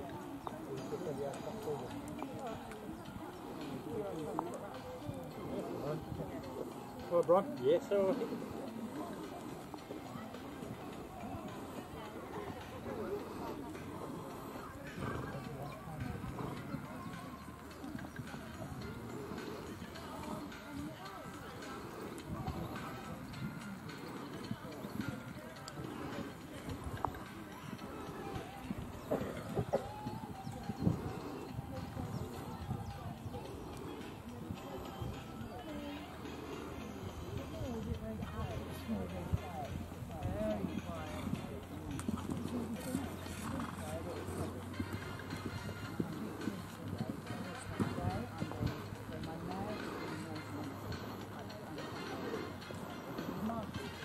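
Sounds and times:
background voices: 0.0s - 54.0s
music: 0.0s - 54.0s
people talking: 0.0s - 54.0s
hoofbeats on sand: 37.4s - 53.8s.

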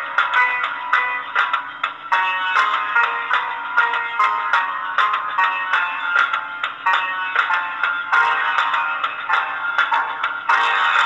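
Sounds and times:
keyboard accompaniment rhythm: 0.0s - 11.0s
keyboard sitar melody: 0.0s - 11.0s.

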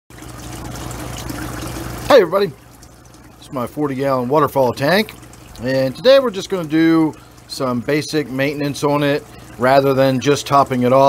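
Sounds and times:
water trickling and splashing: 0.1s - 11.0s
steady low hum: 0.2s - 11.0s.

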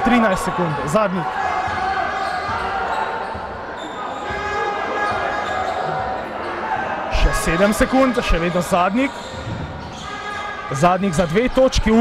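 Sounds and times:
indoor sports hall din: 0.0s - 12.0s.

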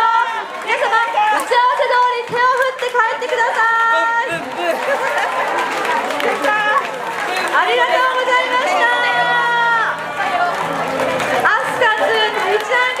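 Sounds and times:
crowd talking and calling out: 0.0s - 13.0s.

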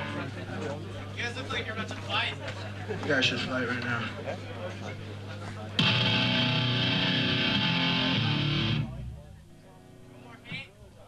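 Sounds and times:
distorted electric guitar chord: 5.8s - 9.2s.

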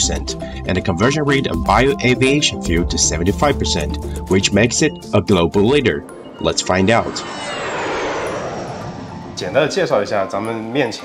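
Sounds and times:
jet airliner roar: 3.8s - 11.0s
high jet engine whine: 4.0s - 11.0s.

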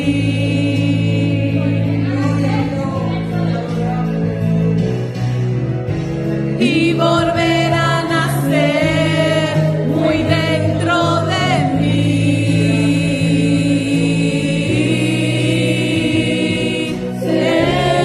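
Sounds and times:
women singing worship song: 0.0s - 3.3s, 6.6s - 18.0s
sustained accompaniment: 0.0s - 18.0s.

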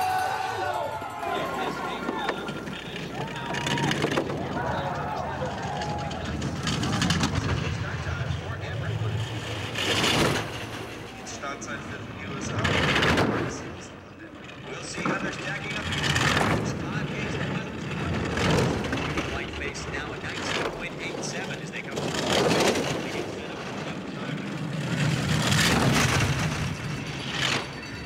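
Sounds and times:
bobsled runners rushing over ice: 0.0s - 13.8s, 14.4s - 28.0s.

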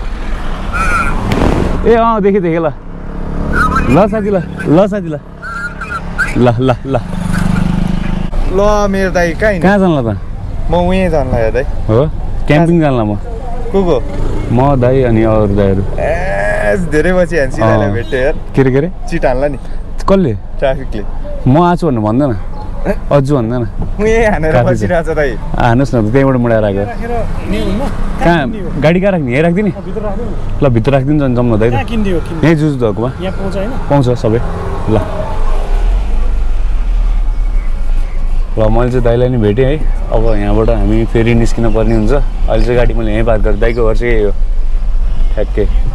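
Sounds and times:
car engine and road noise: 0.0s - 45.9s
person vocalising drawn-out eh: 15.9s - 16.9s.

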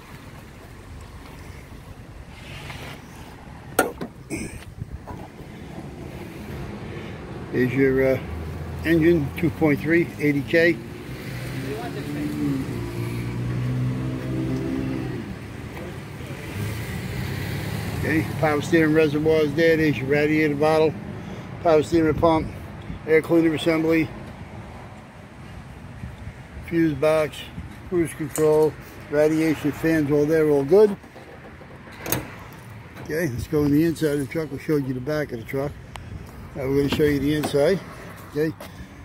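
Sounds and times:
car hood clattering: 3.7s - 4.4s.

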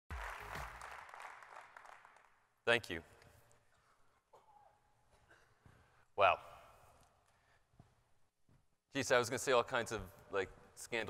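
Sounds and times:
music: 0.1s - 1.1s
audience applauding: 0.1s - 2.4s.

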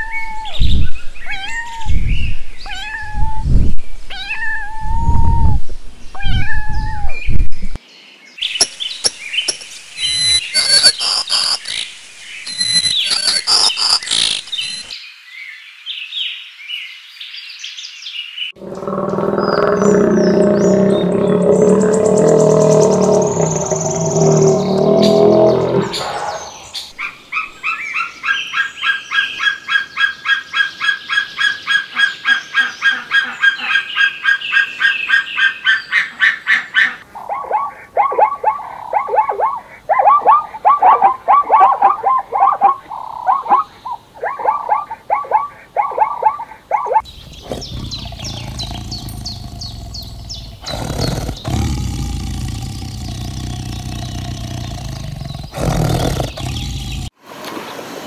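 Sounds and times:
tiger growling: 18.6s - 26.7s, 47.0s - 57.2s
zebra barking bray: 35.7s - 57.1s.

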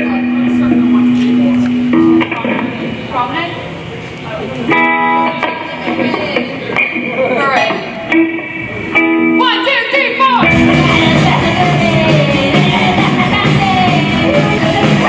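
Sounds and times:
electric guitars through amplifiers: 0.0s - 15.0s.

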